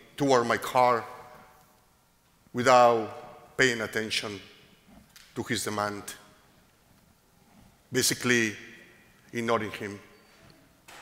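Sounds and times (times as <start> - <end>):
man speaking: 0.0 - 1.4, 2.5 - 4.6, 5.4 - 6.4, 7.9 - 10.2.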